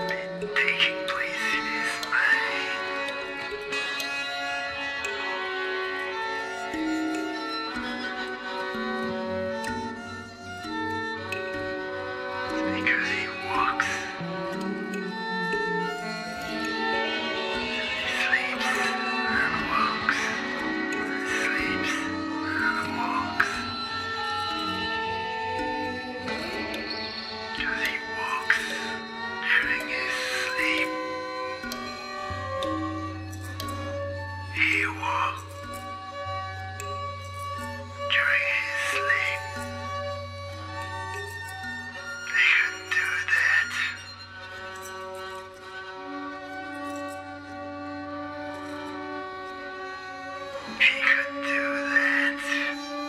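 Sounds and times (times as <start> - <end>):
sustained violin drone: 0.0 - 53.0
swirling noisy textures: 12.7 - 31.6.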